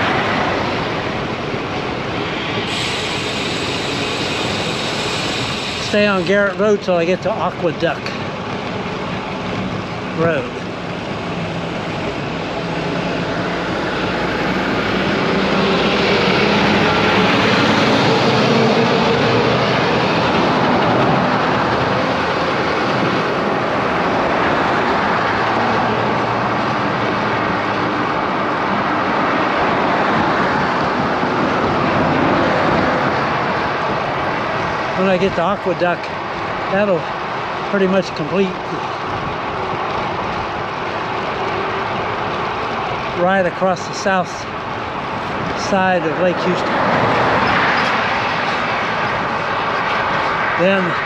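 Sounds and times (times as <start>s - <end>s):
heavy truck passing: 0.0s - 51.0s
wind and road noise: 0.0s - 51.0s.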